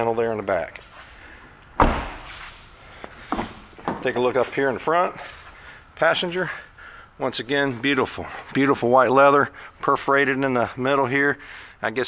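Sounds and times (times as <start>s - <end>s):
car door slamming shut: 1.8s - 2.3s.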